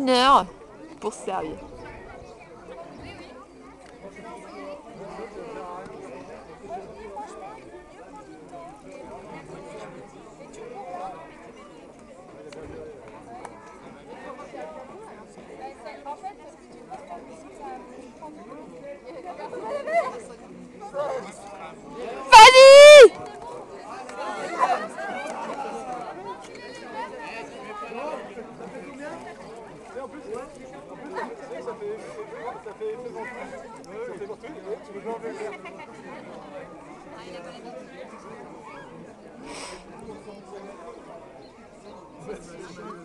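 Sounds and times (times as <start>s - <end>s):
overlapping indistinct chatter: 0.0s - 43.0s.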